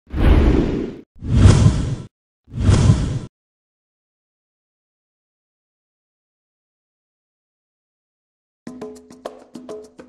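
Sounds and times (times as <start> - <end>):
whoosh sound effects: 0.1 - 3.3.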